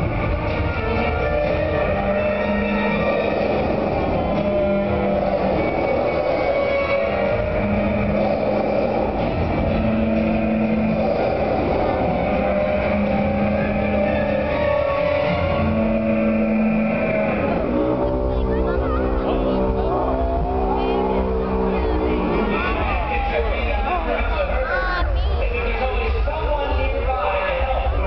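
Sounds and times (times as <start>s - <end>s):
dramatic score over sound system: 0.0s - 28.0s
low dinosaur roar: 0.9s - 23.3s.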